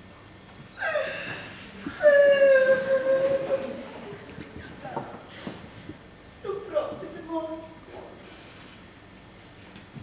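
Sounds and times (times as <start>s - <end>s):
woman wailing: 2.0s - 3.9s.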